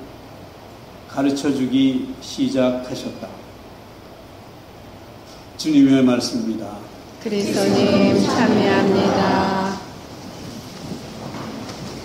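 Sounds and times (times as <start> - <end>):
recorder hiss: 0.0 - 12.0.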